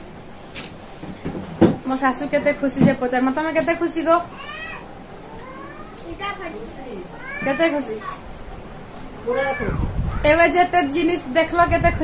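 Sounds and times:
woman calling: 0:06.1 - 0:08.2.

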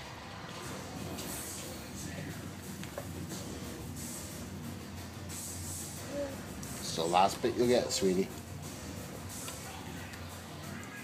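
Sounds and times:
faint television murmur: 0:00.0 - 0:04.5, 0:05.3 - 0:11.0
faint voice: 0:06.0 - 0:06.5, 0:09.4 - 0:11.0.

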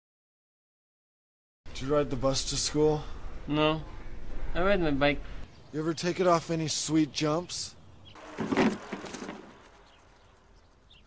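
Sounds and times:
faint bird chirps: 0:09.5 - 0:11.0.

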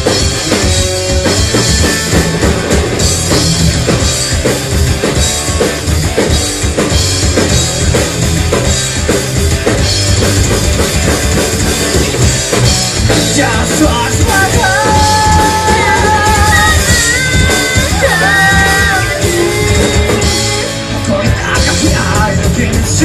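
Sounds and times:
drum kit beat: 0:00.0 - 0:23.0
live rock band playing: 0:00.0 - 0:23.0
person singing: 0:13.1 - 0:23.0.

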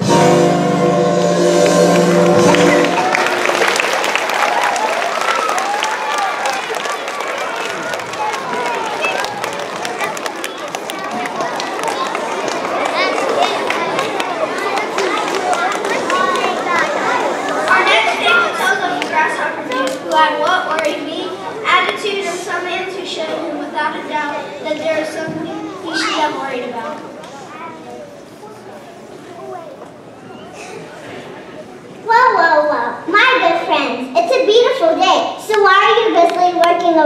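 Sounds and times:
held chord of backing music: 0:00.0 - 0:03.6
hubbub of many voices chattering: 0:00.0 - 0:37.0.

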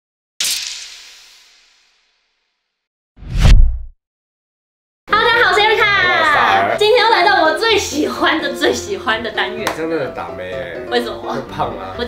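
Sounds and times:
whoosh with deep bass hit: 0:03.2 - 0:03.9.

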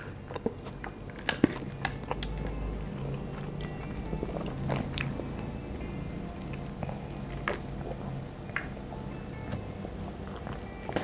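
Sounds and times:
chewing crunchy food: 0:00.0 - 0:05.4, 0:06.5 - 0:08.7, 0:10.2 - 0:11.0.

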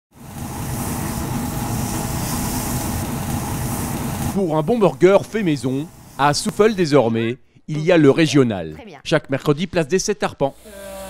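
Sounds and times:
low mechanical hum: 0:00.2 - 0:07.6.

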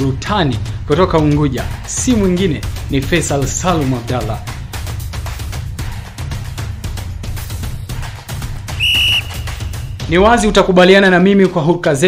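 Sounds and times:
background music with steady beat: 0:00.0 - 0:12.0
high whistle blast: 0:08.8 - 0:10.0.

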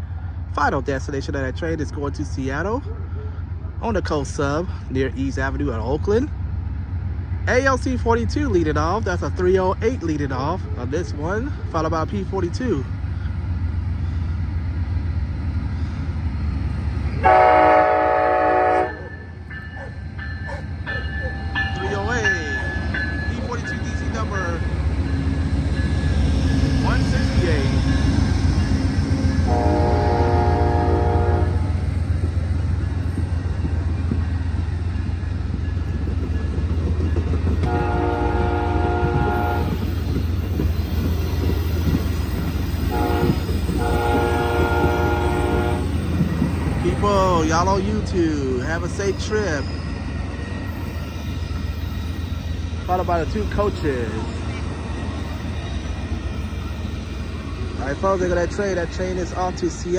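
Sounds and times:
train engines and wheels rumbling: 0:00.0 - 0:59.9
locomotive air horn blasts: 0:17.2 - 0:19.2, 0:29.4 - 0:31.8, 0:37.6 - 0:39.8, 0:42.8 - 0:46.0.

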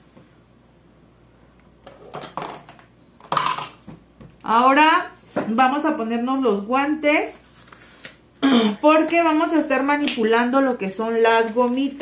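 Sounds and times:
kitchen items clicking and knocking: 0:01.9 - 0:03.9.

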